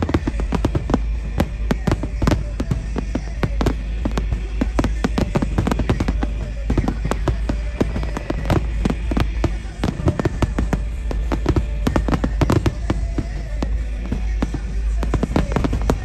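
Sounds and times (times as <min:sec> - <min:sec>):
fireworks bangs and crackles: 0:00.0 - 0:16.0.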